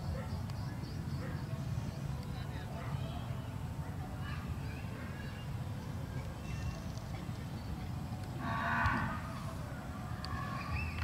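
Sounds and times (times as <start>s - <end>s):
low background noise: 0.0s - 11.0s
animal drawn-out call: 8.4s - 9.5s.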